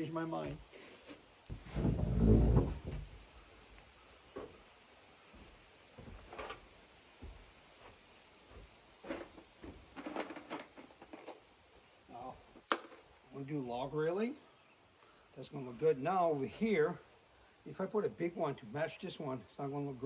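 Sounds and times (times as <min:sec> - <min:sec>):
footsteps on wooden porch: 0:00.0 - 0:03.5, 0:04.3 - 0:11.5
metal chair scraping on wood: 0:01.6 - 0:03.0.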